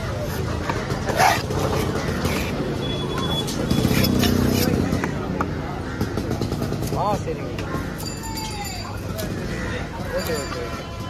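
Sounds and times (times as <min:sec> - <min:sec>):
market voices: 0:00.0 - 0:11.0
motor vehicle noise: 0:00.0 - 0:11.0.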